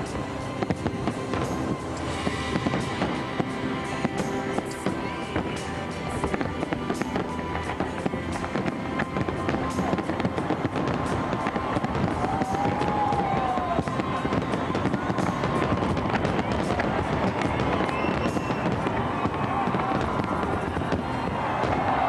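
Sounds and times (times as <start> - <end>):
firework crackle: 0.0 - 22.0
firework shells bursting: 0.0 - 22.0.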